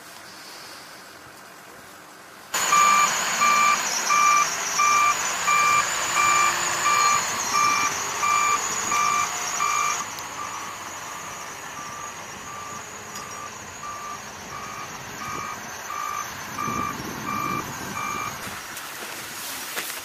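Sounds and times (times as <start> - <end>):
loader engine running: 2.0 - 19.6
reversing alarm beeping: 2.6 - 18.6.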